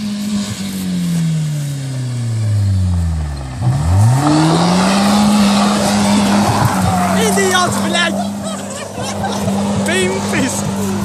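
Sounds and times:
car engine revving: 0.0s - 11.0s
gravel spraying from wheels: 0.0s - 11.0s.

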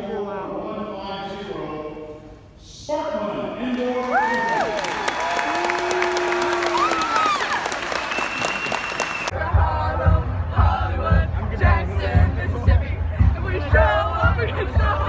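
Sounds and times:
crowd cheering and applauding: 3.7s - 9.4s
whoops and screams: 4.1s - 9.3s.

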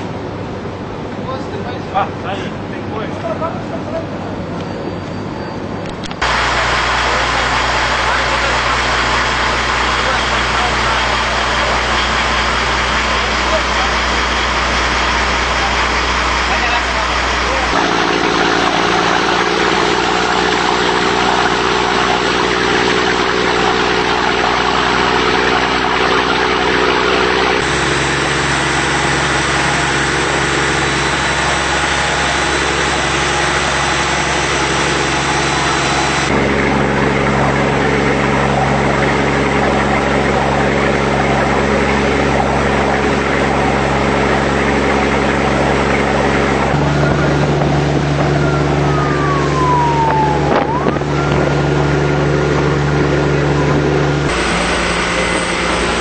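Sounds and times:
boat engine droning: 0.0s - 56.0s.

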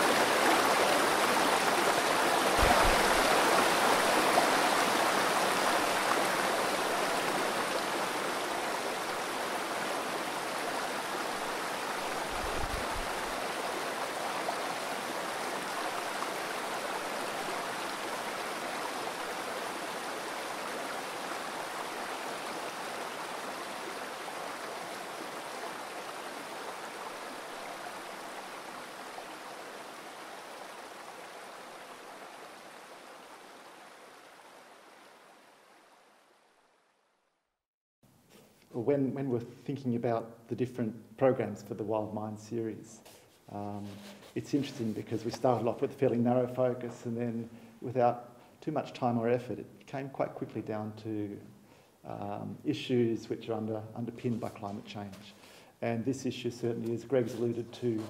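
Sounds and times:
rushing stream: 0.0s - 36.9s, 56.5s - 58.0s.

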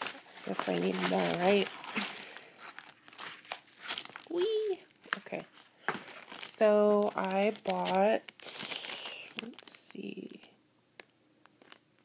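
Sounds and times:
plastic bag crinkling: 0.0s - 10.5s, 11.4s - 12.0s.

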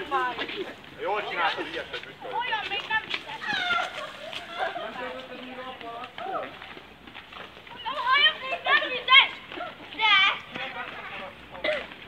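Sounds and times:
children shouting at play: 2.2s - 5.5s, 7.7s - 10.6s.

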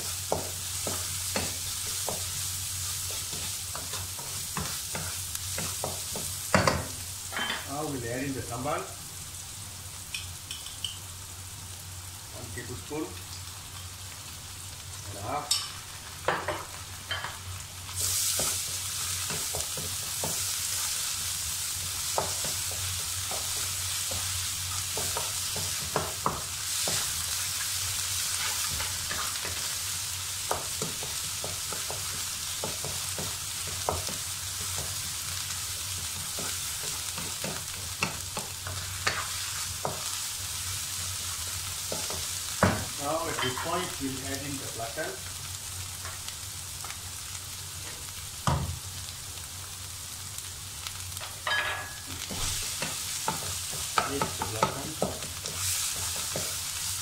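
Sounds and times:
onions frying in hot oil: 0.0s - 57.0s
spatula scraping a pan: 36.0s - 40.0s.

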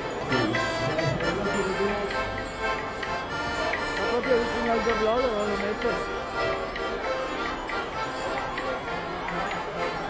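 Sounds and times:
accordion folk melody: 0.0s - 10.0s.

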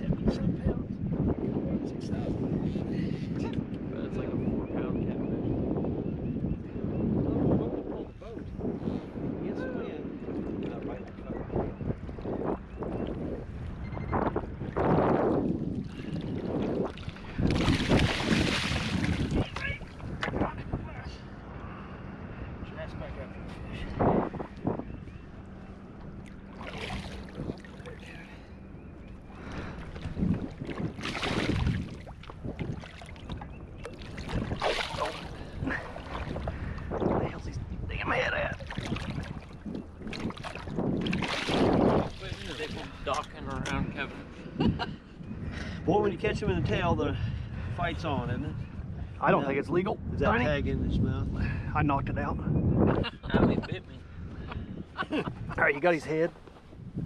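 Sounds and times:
fish thrashing and splashing: 16.9s - 20.0s, 26.3s - 27.9s, 29.7s - 36.6s, 38.6s - 42.7s.

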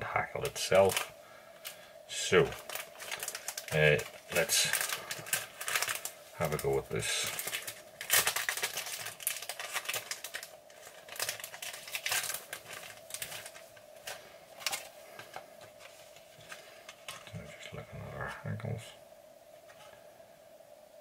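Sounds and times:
faint steady hum: 0.0s - 21.0s
materials crinkling and rustling: 0.3s - 18.8s.

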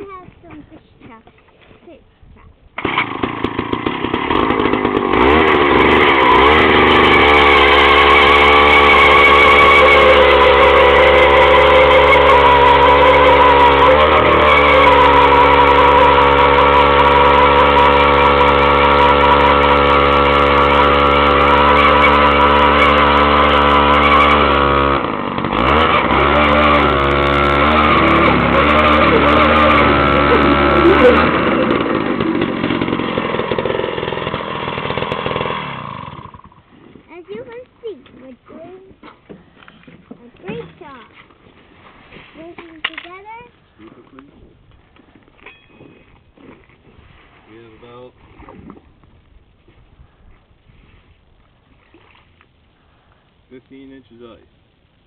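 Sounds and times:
auger bit drilling through ice: 2.8s - 36.6s
ice auger engine running: 2.8s - 37.6s.

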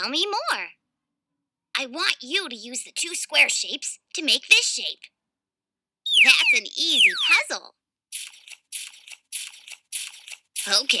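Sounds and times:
cartoon scratchy hissing strokes: 8.1s - 11.0s.

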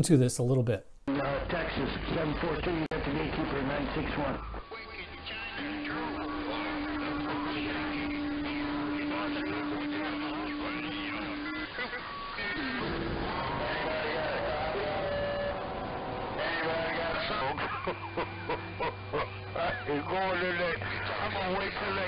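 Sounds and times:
radio static: 1.1s - 22.0s
voices over radio: 1.1s - 22.0s
steady low tone: 4.4s - 22.0s.

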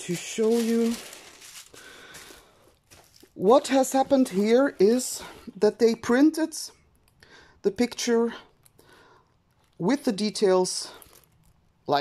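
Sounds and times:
plastic film rustling: 0.0s - 5.6s.

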